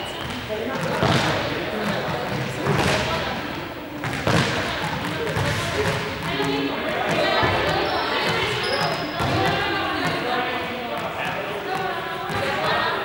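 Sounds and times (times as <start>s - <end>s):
balls bouncing on hall floor: 0.0s - 13.0s
indistinct chatter: 0.0s - 13.0s.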